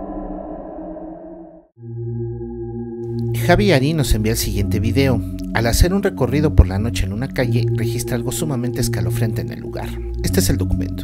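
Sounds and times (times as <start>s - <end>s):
low humming drone: 0.0s - 11.0s
droning chord: 1.8s - 11.0s.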